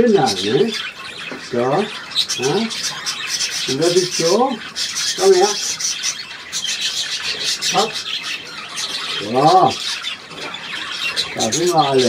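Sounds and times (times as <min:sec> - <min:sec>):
budgies chattering and chirping: 0:00.0 - 0:12.0.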